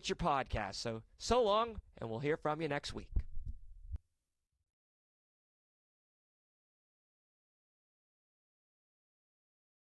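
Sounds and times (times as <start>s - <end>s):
low dull thumps: 3.1s - 4.0s.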